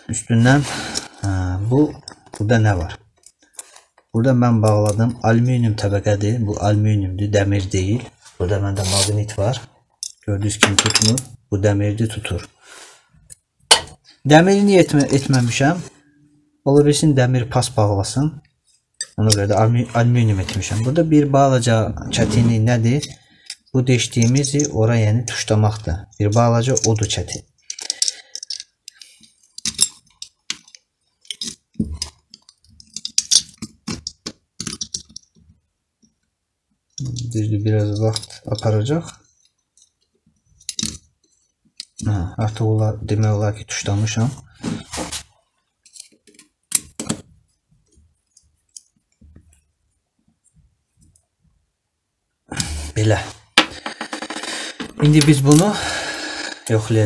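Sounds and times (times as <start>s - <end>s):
tools clicking and knocking: 3.1s - 4.1s, 10.0s - 11.3s, 13.3s - 15.5s, 19.0s - 19.4s, 26.4s - 35.6s, 39.3s - 42.0s, 45.8s - 47.3s, 53.6s - 55.7s.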